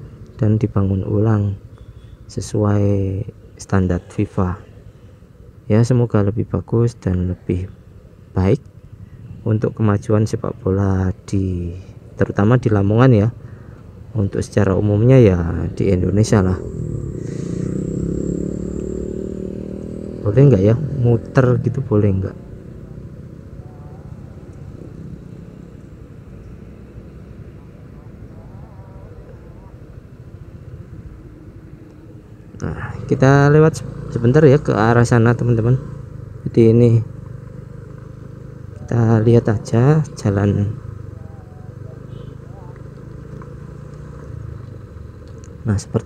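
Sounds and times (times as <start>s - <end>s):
scooter engine idling: 1.6s - 2.3s, 22.4s - 31.2s, 40.8s - 43.9s
scooter engine running: 16.5s - 21.2s.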